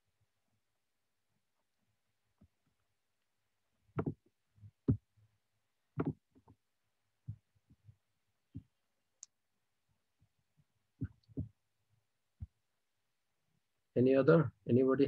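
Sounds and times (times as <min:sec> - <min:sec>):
soft low thumps and knocks: 0:04.0 - 0:05.1, 0:06.0 - 0:06.6, 0:11.0 - 0:11.6.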